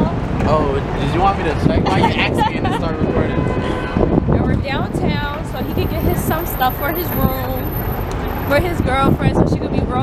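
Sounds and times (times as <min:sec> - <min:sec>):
man and woman talking: 0:00.0 - 0:07.6
city traffic rumble: 0:00.0 - 0:10.0.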